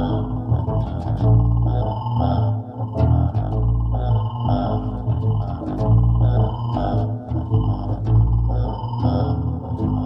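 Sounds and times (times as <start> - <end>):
electric bass low held notes: 0.0 - 10.0
high synthesizer blips: 0.0 - 10.0.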